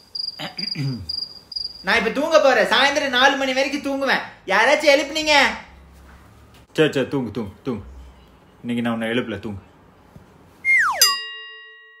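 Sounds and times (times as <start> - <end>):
bright bell-like ding: 11.0 - 12.0.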